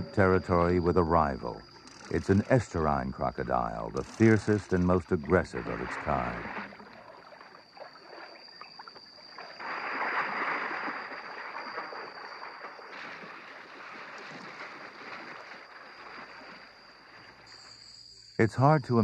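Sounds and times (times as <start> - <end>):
river water churning and splashing: 4.0 - 8.5, 9.3 - 17.5.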